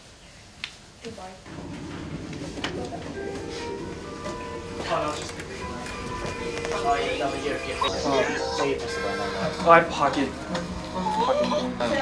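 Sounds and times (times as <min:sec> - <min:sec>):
background music with held tones: 0:01.5 - 0:12.0
man speaking: 0:06.7 - 0:10.4.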